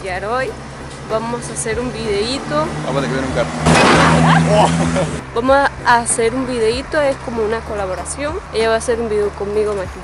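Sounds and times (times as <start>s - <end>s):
motor vehicle passing: 0.0s - 10.0s.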